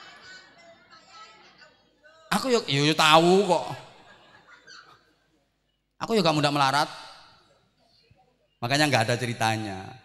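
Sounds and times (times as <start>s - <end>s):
man's amplified voice: 2.3s - 4.0s, 6.0s - 7.4s, 8.6s - 10.0s.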